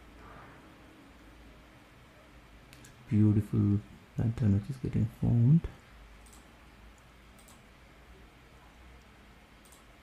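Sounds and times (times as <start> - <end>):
low steady hum: 0.0 - 10.0
computer mouse clicks: 2.7 - 3.0, 6.2 - 7.7, 9.0 - 10.0.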